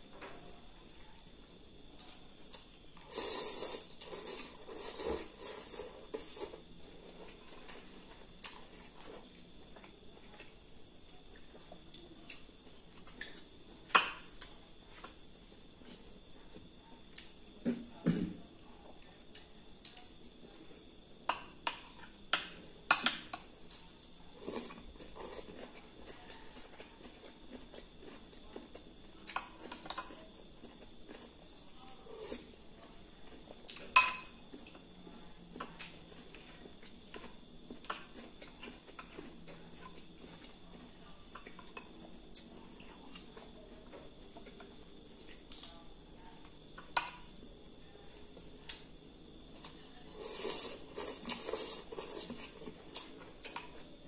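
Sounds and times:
metal spoon clinking on ceramic bowls: 33.9s - 34.4s.

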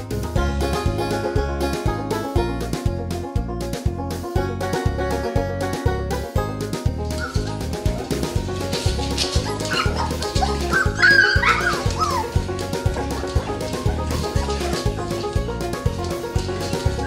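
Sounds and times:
background music with beat: 0.0s - 17.0s
dog yipping and whining: 7.2s - 7.6s, 9.3s - 12.4s.

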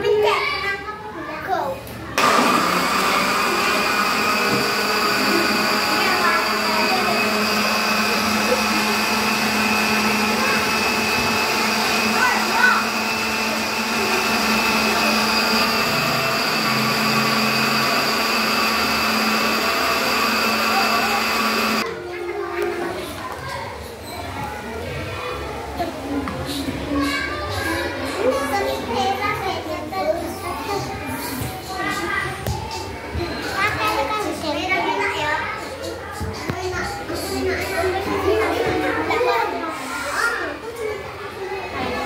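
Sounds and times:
blender running: 2.2s - 21.9s.

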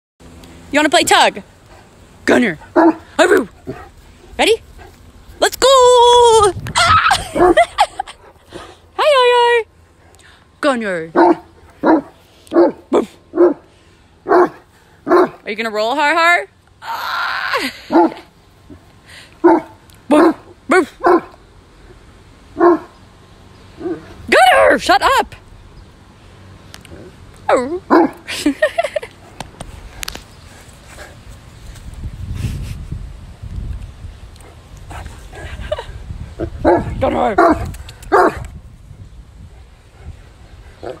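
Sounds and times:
dog barking: 2.8s - 3.0s, 11.2s - 13.6s, 14.3s - 15.4s, 19.4s - 20.4s, 21.0s - 21.4s, 22.6s - 22.9s, 27.9s - 28.2s, 36.6s - 38.4s
woman laughing: 6.8s - 8.3s, 17.4s - 18.0s, 28.2s - 29.2s, 35.4s - 36.1s.

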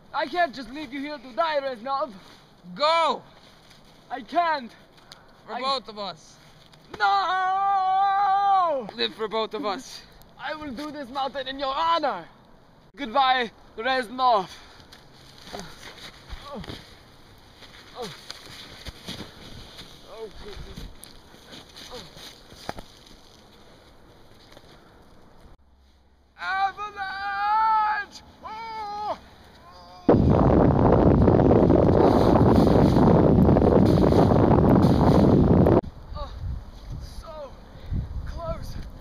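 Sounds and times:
hands and knees crunching snow: 15.2s - 24.6s, 31.9s - 35.6s
loud rushing microphone noise: 30.1s - 35.8s
puffy jacket rustling: 31.5s - 35.8s
faint moaning voice: 36.1s - 36.4s.

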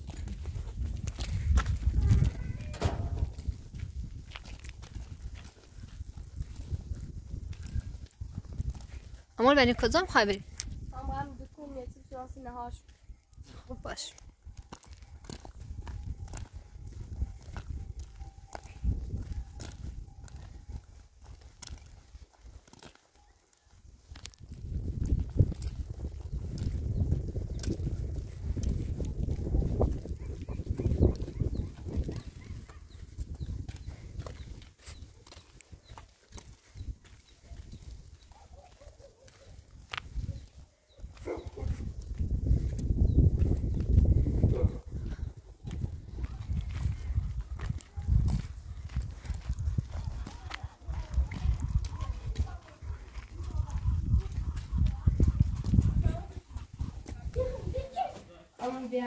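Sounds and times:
wind on microphone: 0.0s - 22.6s, 23.8s - 58.2s
footsteps on gravel: 0.0s - 59.0s.

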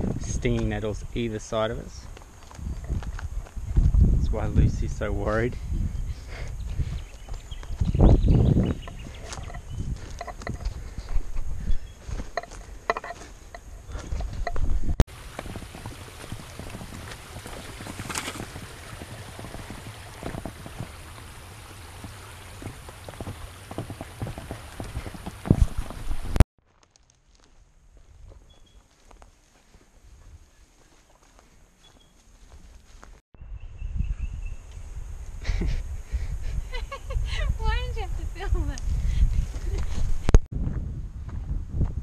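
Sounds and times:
footsteps crunching on dry ground: 0.0s - 33.2s.

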